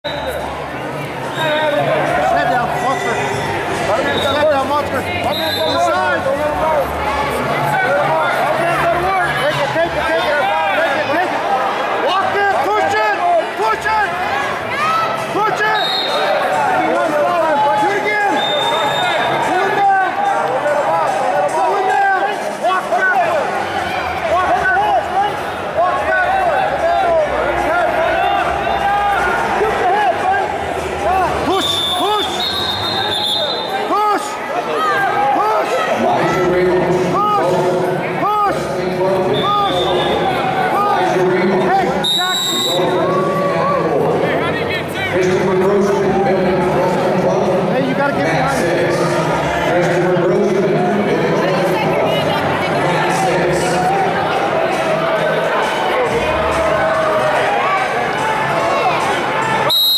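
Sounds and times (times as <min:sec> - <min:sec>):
crowd shouting in echoing hall: 0:00.0 - 0:59.9.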